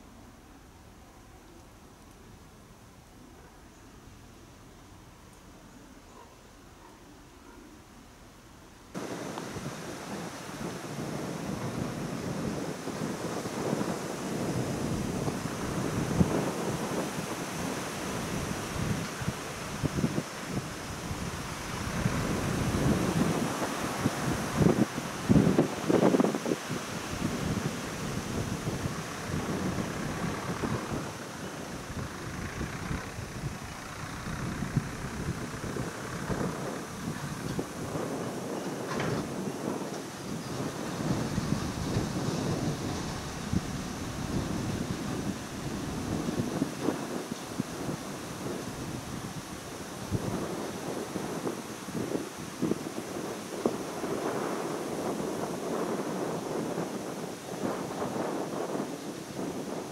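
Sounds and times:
wind buffeting microphone: 8.9s - 59.9s.

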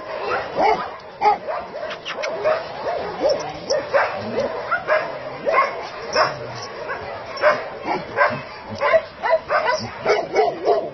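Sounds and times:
dogs barking and yipping: 0.0s - 10.9s.

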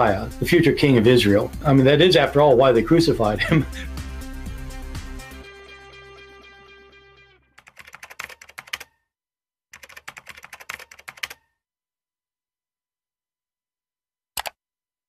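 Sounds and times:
held music chord: 0.0s - 7.5s
keyboard typing clicks: 7.6s - 9.0s, 9.8s - 11.4s, 14.4s - 14.6s.

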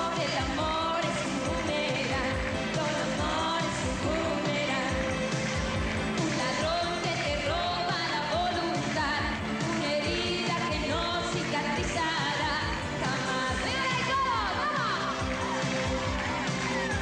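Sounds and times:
woman singing pop song: 0.0s - 17.0s.

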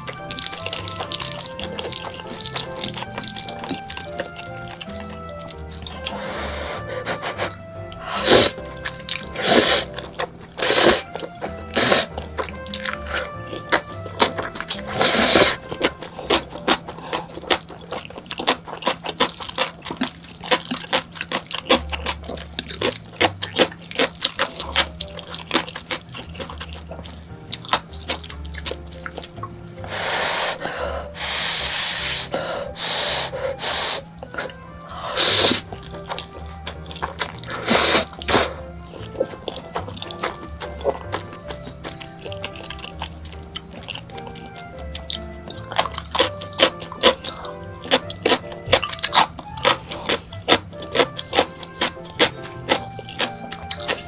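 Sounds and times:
background music: 0.0s - 54.0s
noodles being slurped: 0.0s - 54.0s
person slurping noodles: 0.5s - 12.2s, 14.3s - 15.7s, 29.8s - 35.8s, 37.0s - 38.7s.

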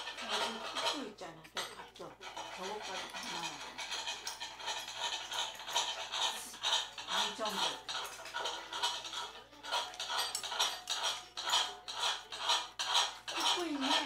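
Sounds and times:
utensils clinking on dish: 0.0s - 14.0s.

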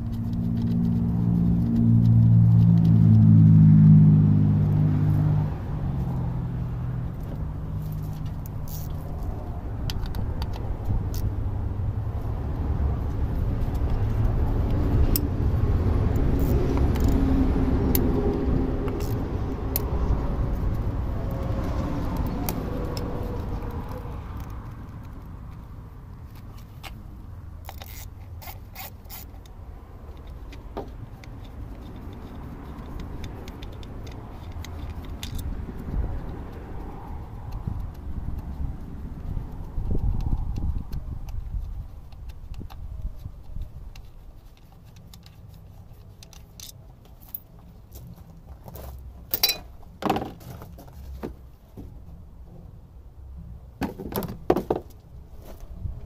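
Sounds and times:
ratchet and hand tools clinking: 7.8s - 9.2s, 27.6s - 29.5s, 30.1s - 35.6s, 49.3s - 49.7s.

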